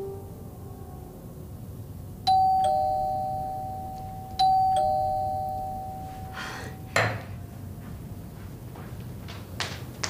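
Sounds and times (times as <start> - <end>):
two-note doorbell chime: 0.0 - 1.0, 2.3 - 7.0.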